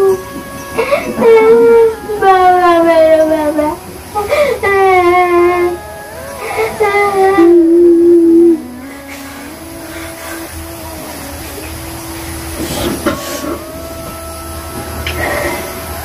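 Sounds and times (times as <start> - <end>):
loud wailing cry: 0.0 - 16.0
steady hiss with held tones: 0.0 - 16.0.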